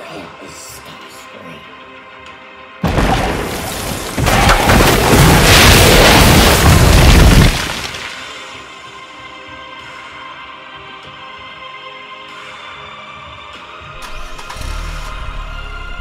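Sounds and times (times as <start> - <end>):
background music: 0.0 - 16.0
explosion boom and rumbling blast: 2.8 - 8.1.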